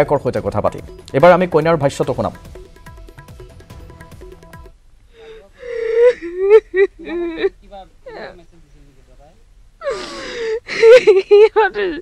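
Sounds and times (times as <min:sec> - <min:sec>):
woman crying: 0:05.2 - 0:08.5, 0:09.8 - 0:12.0.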